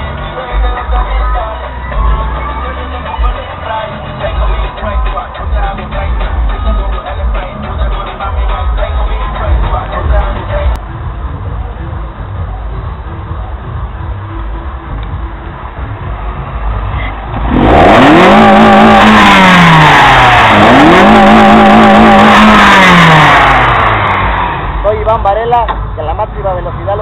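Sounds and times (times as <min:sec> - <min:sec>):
car engine idling: 0:00.0 - 0:27.0
car engine revving: 0:00.0 - 0:27.0.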